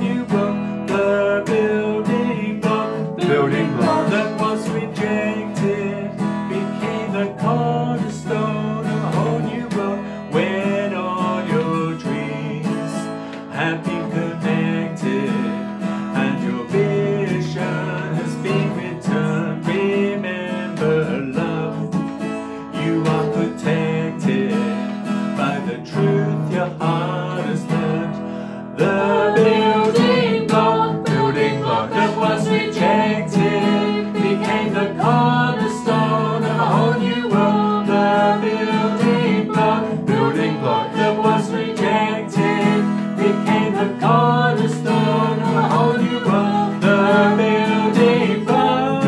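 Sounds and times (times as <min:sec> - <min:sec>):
person singing: 0:00.0 - 0:49.0
strummed acoustic guitar: 0:00.0 - 0:49.0
voices singing along: 0:00.0 - 0:49.0.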